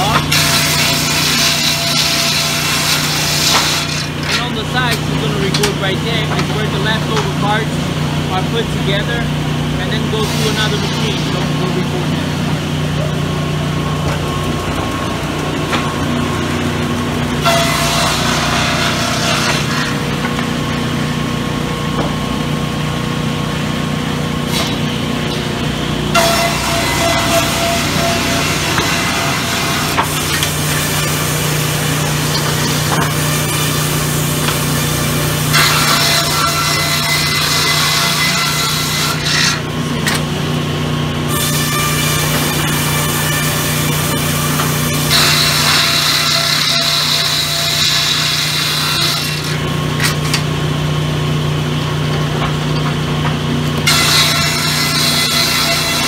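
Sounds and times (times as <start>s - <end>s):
saw cutting wood: 0.0s - 40.6s, 41.2s - 50.5s, 53.4s - 56.0s
motors humming: 0.0s - 56.0s.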